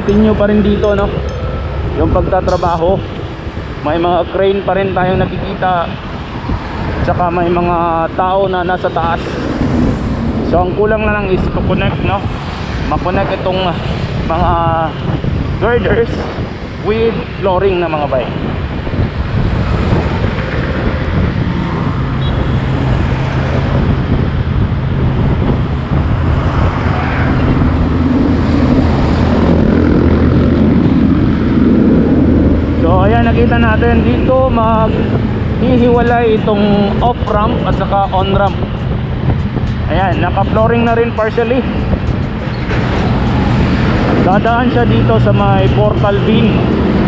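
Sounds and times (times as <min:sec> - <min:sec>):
road traffic: 0:00.0 - 0:47.0
truck engine drone: 0:00.0 - 0:47.0
wind noise on microphone: 0:00.0 - 0:47.0.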